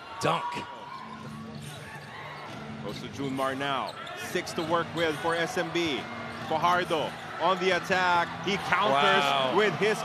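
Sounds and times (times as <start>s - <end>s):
crowd noise in arena: 0.0s - 10.0s.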